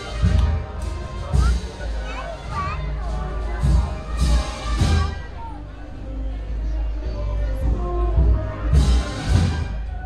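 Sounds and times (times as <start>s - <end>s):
loud drum beats: 0.0s - 6.0s, 7.6s - 10.0s
crowd chatter: 0.0s - 10.0s
wind band playing a march: 3.0s - 6.8s, 7.6s - 10.0s.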